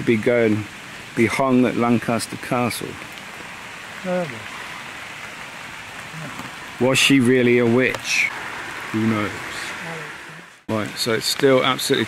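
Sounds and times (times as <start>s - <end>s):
heavy rain falling: 0.0s - 12.0s.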